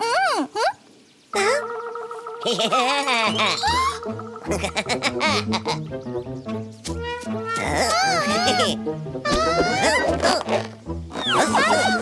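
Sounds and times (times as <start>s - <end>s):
cartoon warbling vocal effect: 1.4s - 4.8s, 6.9s - 10.4s, 11.2s - 12.0s.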